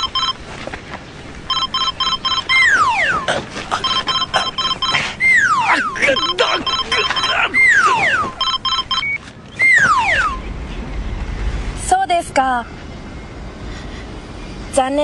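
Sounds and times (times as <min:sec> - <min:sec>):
rapid electronic beeping: 0:00.0 - 0:00.4, 0:01.5 - 0:10.4
descending whistle swoops: 0:09.5 - 0:10.4.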